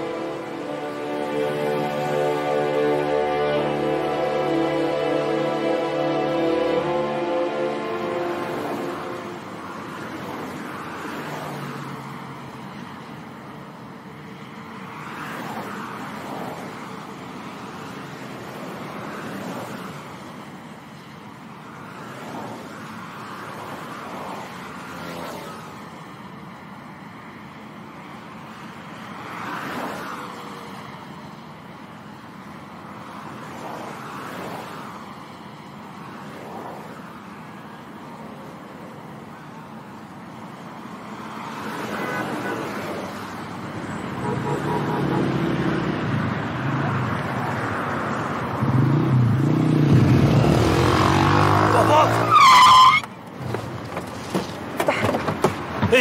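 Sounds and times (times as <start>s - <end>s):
cars passing: 0.0s - 56.0s
car engine approaching: 43.1s - 56.0s
tire squeal: 43.9s - 45.8s, 50.5s - 56.0s.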